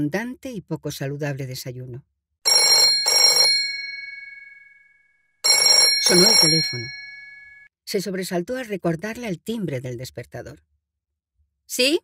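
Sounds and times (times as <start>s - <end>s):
telephone bell ringing: 2.5s - 7.7s.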